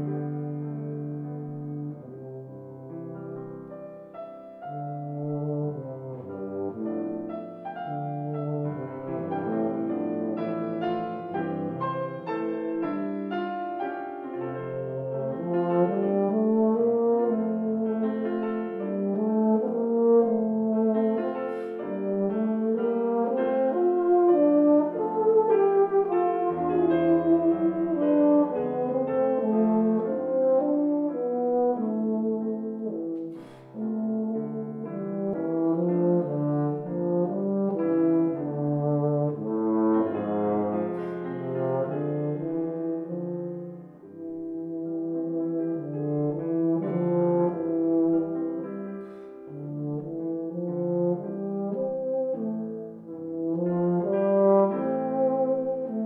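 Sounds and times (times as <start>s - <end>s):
grand piano: 0.0s - 56.0s.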